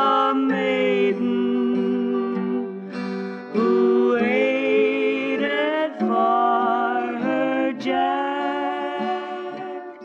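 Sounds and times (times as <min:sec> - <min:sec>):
acoustic guitar: 0:00.0 - 0:10.0
two women singing in harmony: 0:00.0 - 0:10.0.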